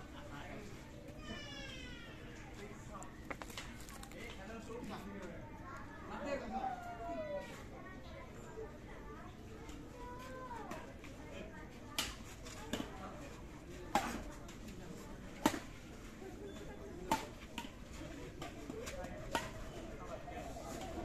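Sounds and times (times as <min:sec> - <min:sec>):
murmured background chatter: 0:00.0 - 0:21.0.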